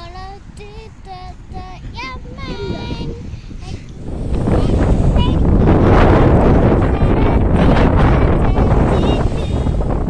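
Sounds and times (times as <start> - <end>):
young girl singing: 0.0 - 10.0.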